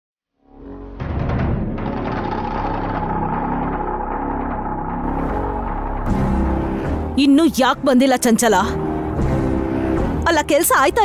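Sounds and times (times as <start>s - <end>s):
low rumbling drone: 0.6s - 10.3s.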